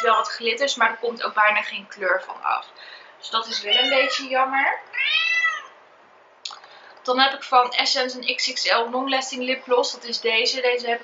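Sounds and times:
cat meowing: 0:03.4 - 0:04.3, 0:04.9 - 0:05.8.

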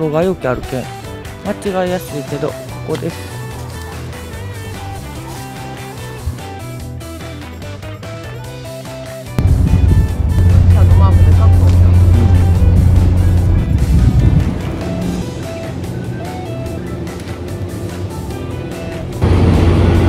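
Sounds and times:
background music: 0:00.0 - 0:20.0
ship engine rumble: 0:09.4 - 0:20.0.

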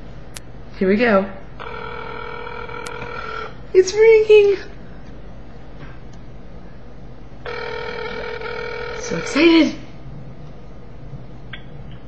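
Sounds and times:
low steady hum: 0:00.0 - 0:12.0
telephone ring tone buzzing: 0:01.6 - 0:03.6, 0:07.4 - 0:09.7.

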